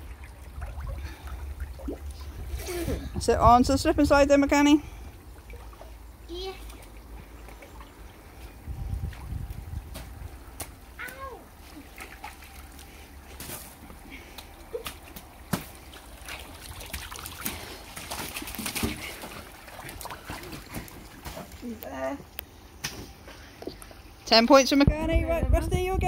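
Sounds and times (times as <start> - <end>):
slime and water sloshing: 0.0 - 3.3, 4.5 - 21.8.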